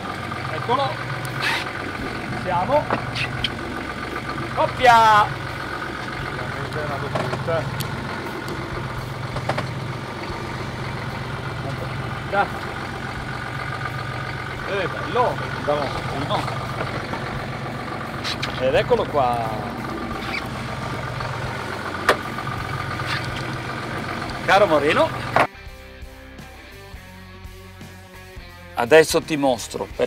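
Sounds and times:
boat engine idling: 0.0 - 25.5.

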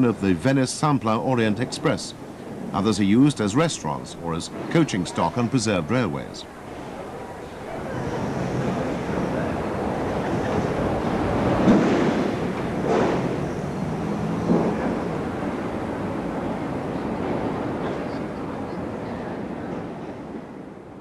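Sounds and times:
steady rushing noise: 0.0 - 18.6.

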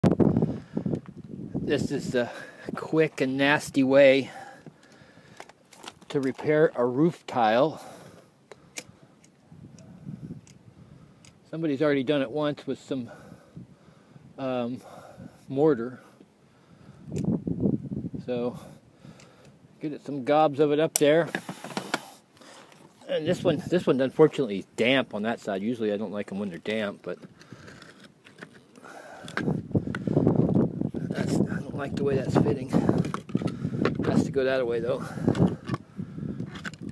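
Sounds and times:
roof tiles scraping and knocking: 21.2 - 23.0.

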